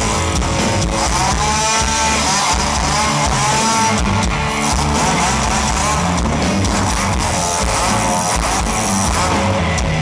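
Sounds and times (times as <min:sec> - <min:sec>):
chainsaw engine revving: 0:00.0 - 0:10.0
rock band drums and guitars: 0:00.0 - 0:10.0.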